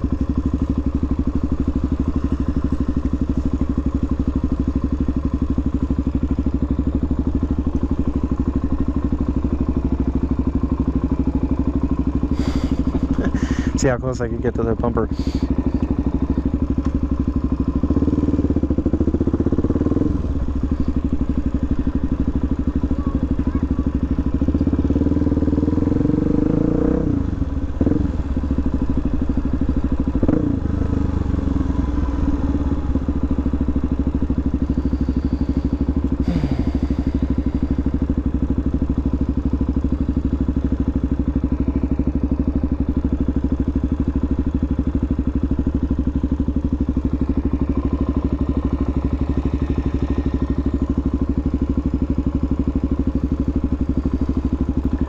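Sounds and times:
motorcycle engine revving and idling: 0.0 - 55.0.

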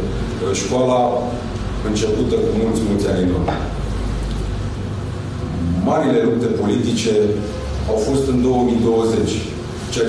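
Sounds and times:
steady low rumble: 3.9 - 7.2
man speaking: 5.5 - 10.0.

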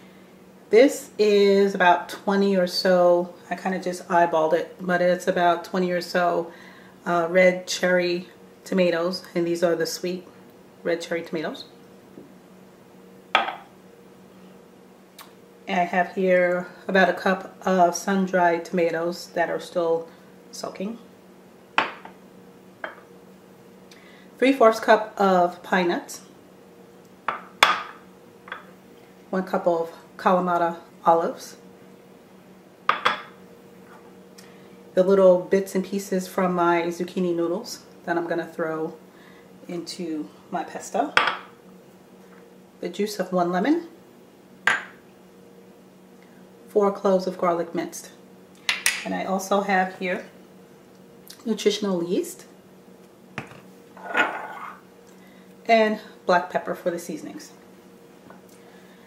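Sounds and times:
glass bowl knocking on stone countertop: 13.4 - 13.6, 32.9 - 33.3, 44.7 - 44.9
shaker set down on countertop: 53.4 - 54.7.

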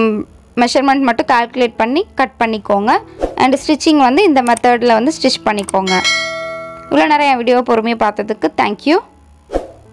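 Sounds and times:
person speaking: 2.6 - 8.7
notification bell chime: 5.9 - 7.4.

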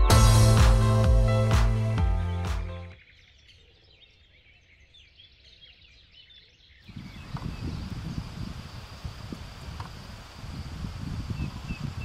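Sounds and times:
small birds chirping: 3.0 - 12.0.

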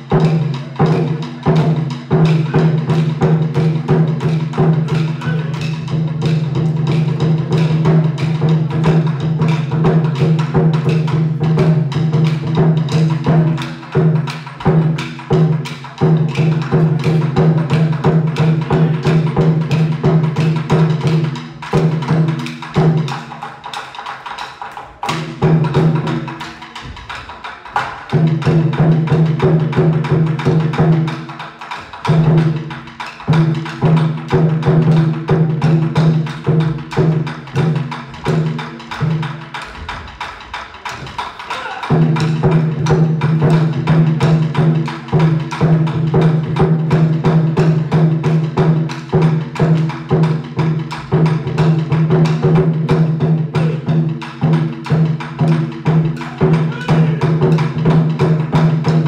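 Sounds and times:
taiko drums: 0.0 - 59.0
drum stick clacks: 35.9 - 43.0.

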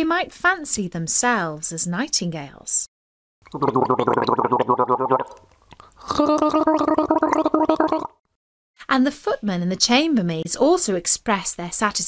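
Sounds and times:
person gargling water: 3.4 - 8.3.

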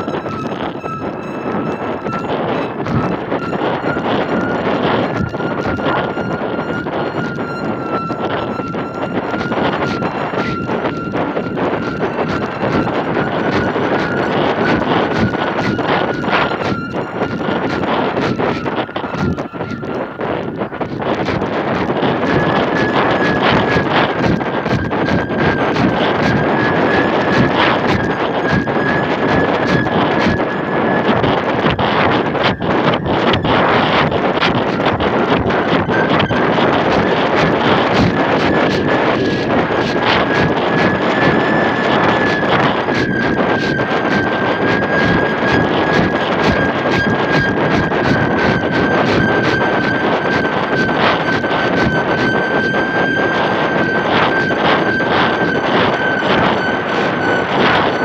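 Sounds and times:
steady high whistling tone: 0.0 - 58.0
wind buffeting microphone: 0.0 - 58.0.

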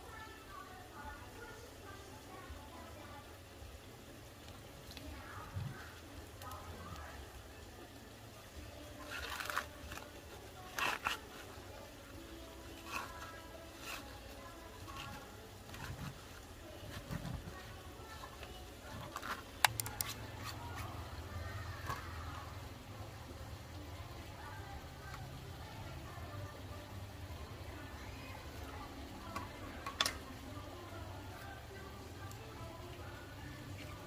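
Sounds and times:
faint music with singing: 0.0 - 34.0
corn husks tearing and rustling: 8.7 - 21.1.

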